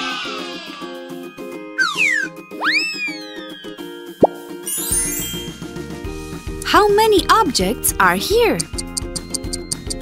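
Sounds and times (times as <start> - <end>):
cheerful children's music: 0.0 - 10.0
cartoon swoop: 1.8 - 3.4
cartoon falling whistle: 1.8 - 3.6.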